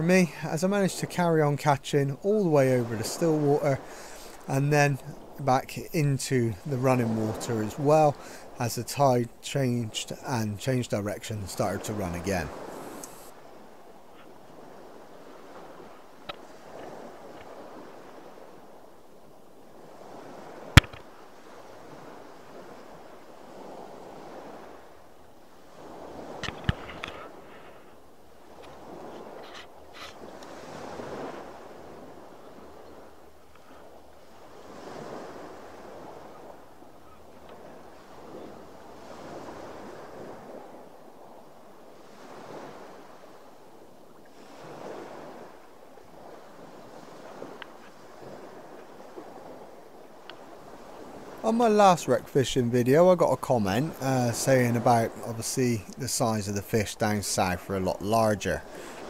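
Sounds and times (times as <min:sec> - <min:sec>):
sea waves washing against boat: 0:00.0 - 0:59.0
sharp knock: 0:20.8 - 0:21.0.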